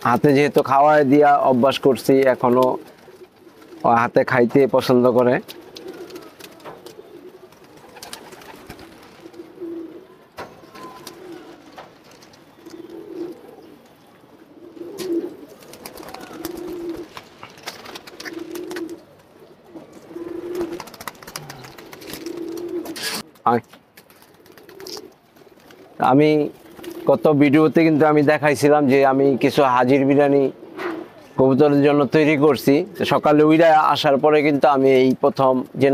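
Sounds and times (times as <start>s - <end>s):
pigeons cooing: 0.0s - 23.4s, 24.1s - 28.3s, 29.1s - 33.6s.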